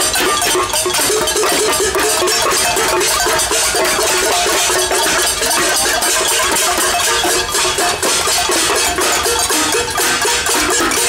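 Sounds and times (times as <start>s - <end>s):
pots and pans being beaten: 0.0s - 11.0s.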